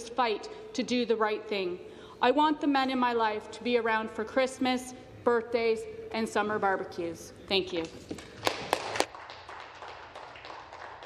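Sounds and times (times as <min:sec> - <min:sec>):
light applause: 0:08.3 - 0:11.0.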